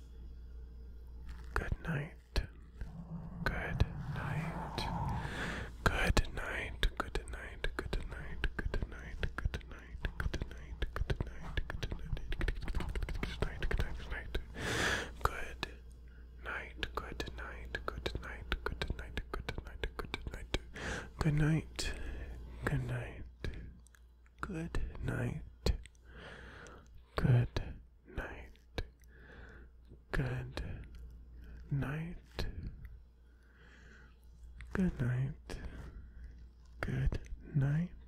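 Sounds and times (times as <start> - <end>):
breathy wordless whispering: 1.3 - 15.8, 16.4 - 38.0
wet lip and tongue clicks: 23.5 - 24.4.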